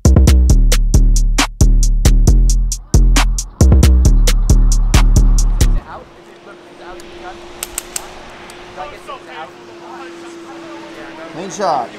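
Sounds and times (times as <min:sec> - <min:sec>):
distant voices: 0:02.3 - 0:11.9.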